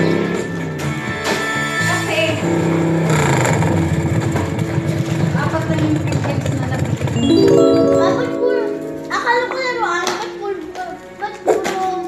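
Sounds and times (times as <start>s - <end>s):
held chord of steady tones: 7.2s - 10.2s
background music: 7.2s - 10.4s.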